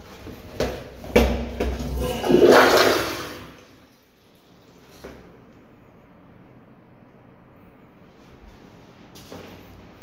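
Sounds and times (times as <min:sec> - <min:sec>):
toilet flushing: 0:01.6 - 0:04.1.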